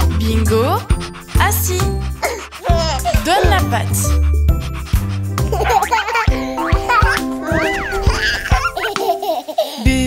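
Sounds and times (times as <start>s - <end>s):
children's song music: 0.0s - 10.0s
baby giggling: 2.2s - 3.6s, 5.3s - 9.9s.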